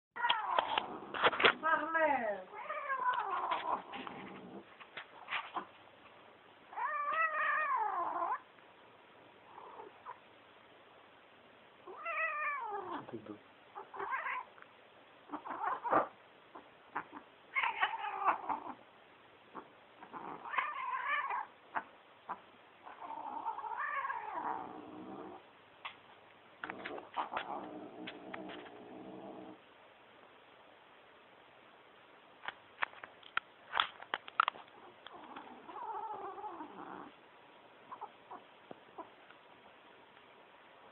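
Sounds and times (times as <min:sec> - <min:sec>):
cat yowling: 0:11.9 - 0:13.0, 0:13.8 - 0:14.5, 0:15.3 - 0:16.1, 0:17.0 - 0:18.8, 0:20.0 - 0:24.6.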